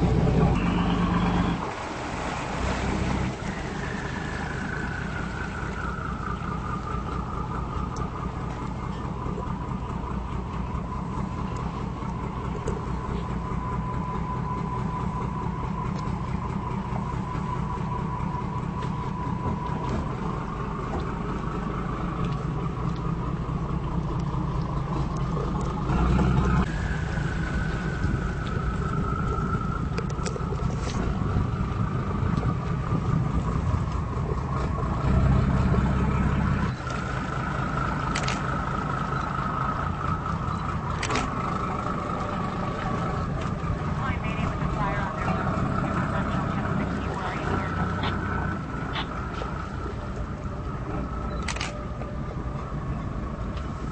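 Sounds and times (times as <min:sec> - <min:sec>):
boat engines rumbling: 0:00.0 - 0:53.9
faint engine whine: 0:00.0 - 0:53.9.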